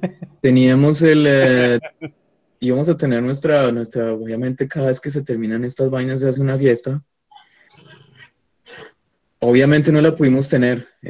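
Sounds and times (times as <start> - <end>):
man murmuring: 0.0 - 2.0.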